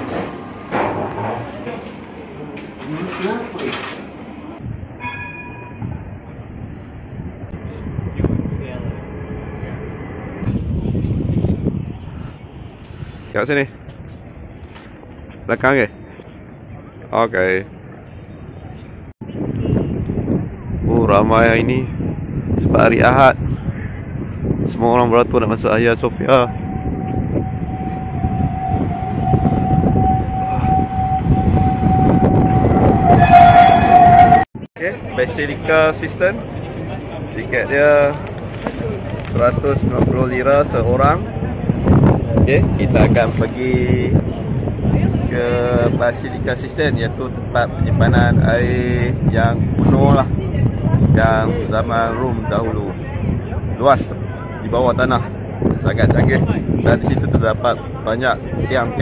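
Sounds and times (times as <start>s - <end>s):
tram rumbling on rails: 0.0s - 59.0s
steady high tone: 25.8s - 34.5s
tram motor whine: 25.8s - 34.5s.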